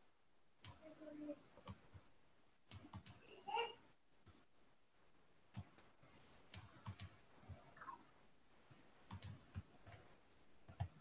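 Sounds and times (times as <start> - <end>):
faint computer mouse clicks: 6.5 - 7.6, 9.1 - 10.0.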